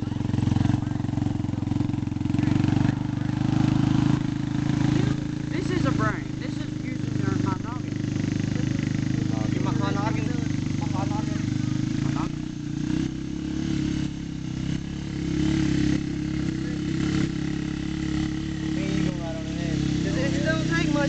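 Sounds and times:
atv engine running: 0:00.0 - 0:21.0
voices: 0:00.0 - 0:21.0.

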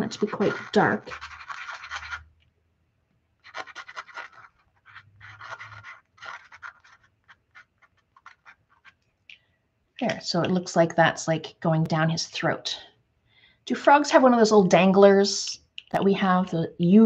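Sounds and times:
marker scribbling on paper: 0:00.0 - 0:02.3, 0:03.4 - 0:09.0.

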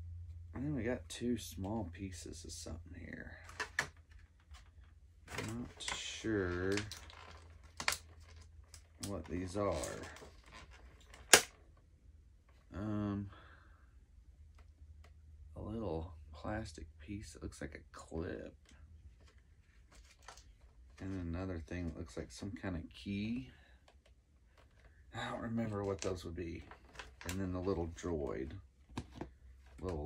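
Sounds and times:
plastic bag clicks: 0:11.1 - 0:11.6.

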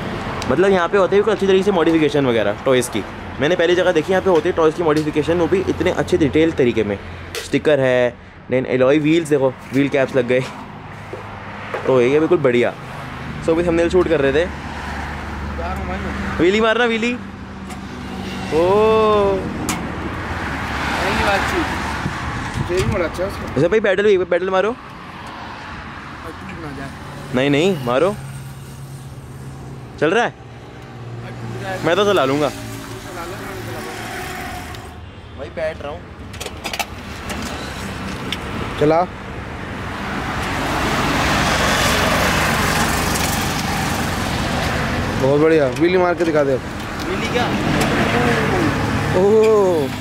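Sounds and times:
road traffic: 0:00.0 - 0:50.0
person exclaiming: 0:48.2 - 0:49.4.

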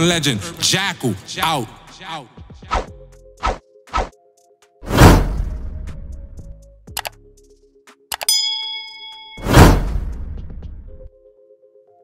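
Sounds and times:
mouse clicks: 0:06.9 - 0:07.2, 0:08.1 - 0:08.3
bell ding: 0:08.2 - 0:09.6.

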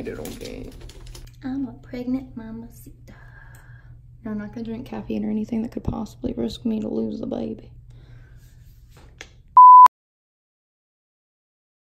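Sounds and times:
electronic beep: 0:09.6 - 0:09.9.

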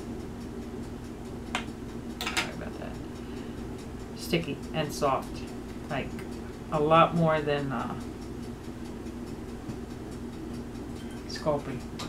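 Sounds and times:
low steady hum: 0:00.0 - 0:12.0
faint regular ticking: 0:00.1 - 0:12.0.

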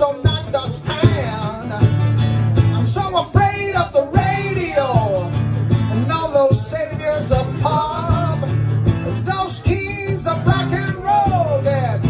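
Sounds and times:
man singing: 0:00.0 - 0:12.0
strummed acoustic guitar: 0:00.0 - 0:12.0.

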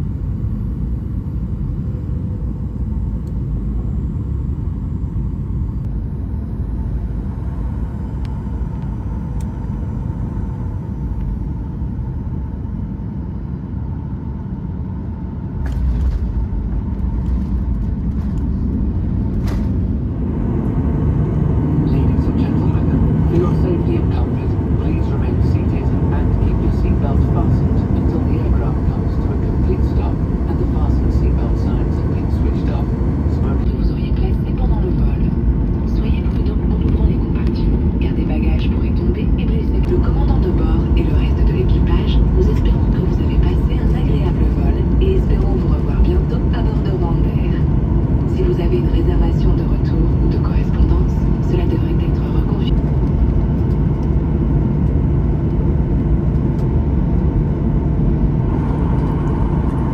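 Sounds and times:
aircraft engine rumble in cabin: 0:00.0 - 0:59.9.

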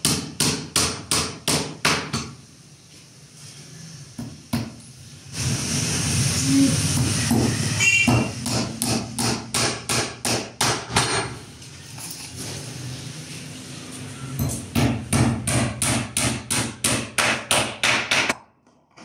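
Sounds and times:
hammer striking wood: 0:00.0 - 0:02.3, 0:07.0 - 0:11.3, 0:14.7 - 0:18.4.

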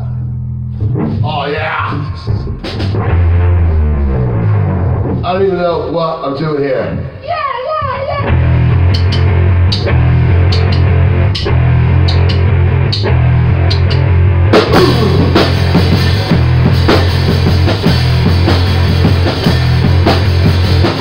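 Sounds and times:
rock drum kit: 0:00.0 - 0:05.9, 0:07.9 - 0:21.0
electric bass guitar: 0:00.0 - 0:06.2, 0:07.9 - 0:21.0.

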